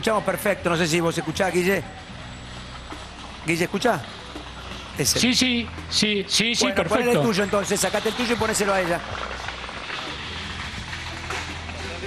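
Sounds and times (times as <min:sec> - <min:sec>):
faint indistinct voices: 0:00.0 - 0:05.3
street background rumble: 0:00.0 - 0:12.0.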